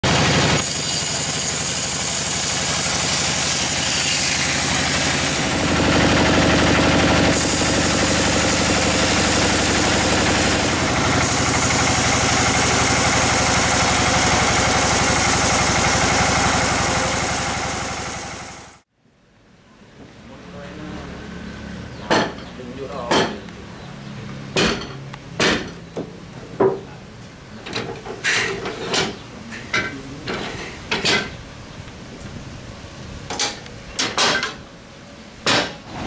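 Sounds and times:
band sawmill sawing log: 0:00.0 - 0:18.8
blade hissing in wood: 0:00.6 - 0:05.6, 0:07.3 - 0:13.8.

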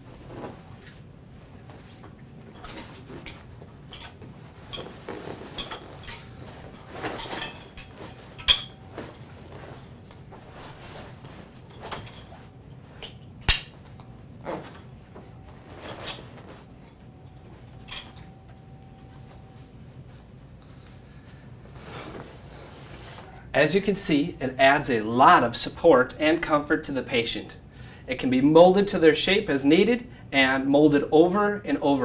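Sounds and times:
scuffing and rustling of straps: 0:00.1 - 0:13.0.

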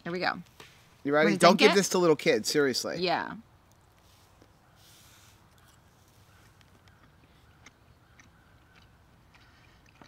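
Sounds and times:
people chewing food: 0:03.6 - 0:10.0.

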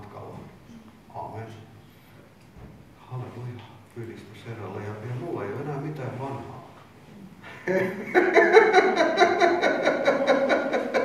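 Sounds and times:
man laughing heartily: 0:07.5 - 0:11.0.

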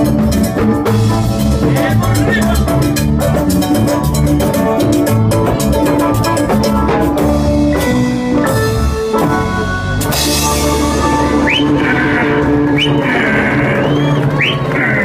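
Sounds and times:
latin dance band playing: 0:00.0 - 0:15.0.

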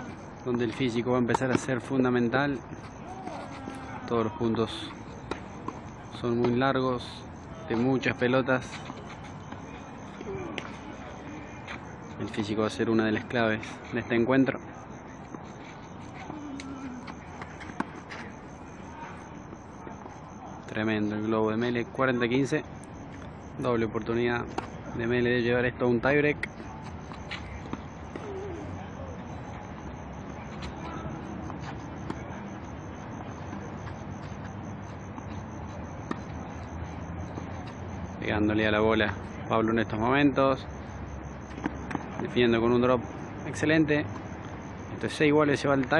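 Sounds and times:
outdoor background noise: 0:00.0 - 0:45.9.

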